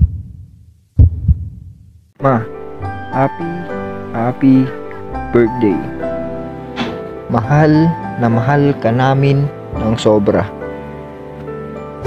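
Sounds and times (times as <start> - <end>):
deep bass thumps: 0.0 - 1.8.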